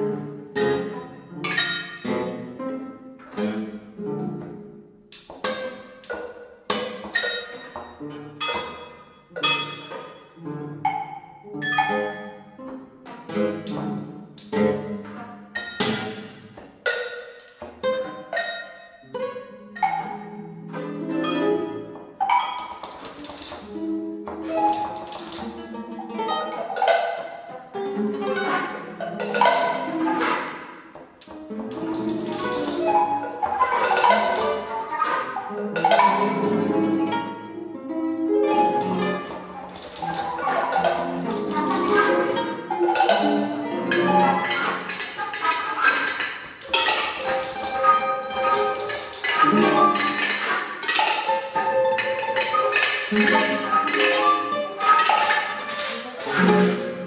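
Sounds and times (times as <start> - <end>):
chamber music ensemble: 0.0 - 57.0.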